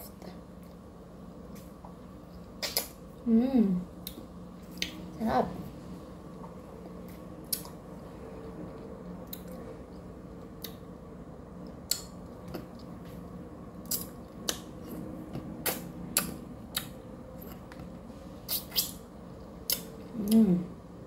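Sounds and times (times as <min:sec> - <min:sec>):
faint steady hum: 0:00.0 - 0:21.0.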